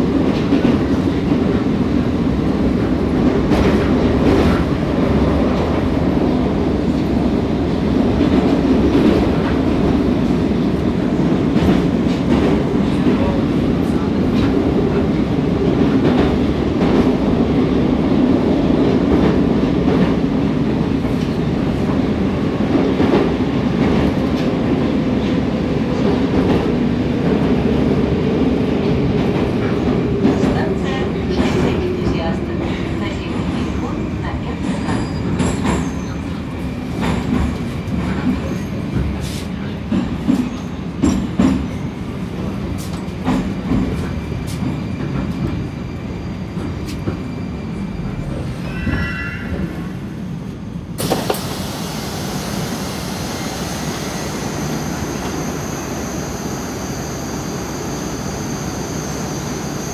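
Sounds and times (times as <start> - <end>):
train wheels rumbling: 0.0 - 59.9.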